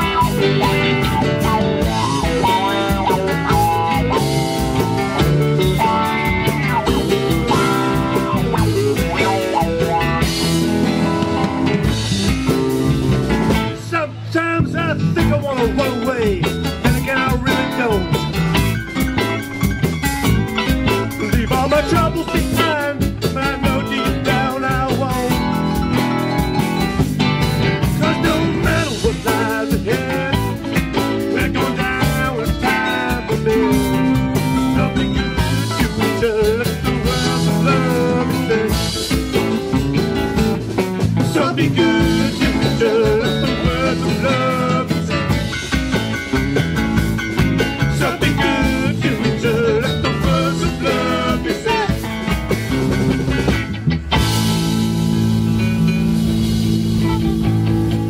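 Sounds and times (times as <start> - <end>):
bass guitar: 0.0 - 58.0
electric guitars: 0.0 - 58.0
rock band playing: 0.0 - 58.0.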